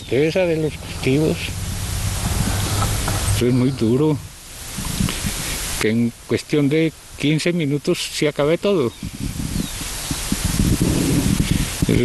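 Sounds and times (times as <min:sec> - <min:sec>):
wind buffeting microphone: 0:00.0 - 0:05.8, 0:08.8 - 0:12.0.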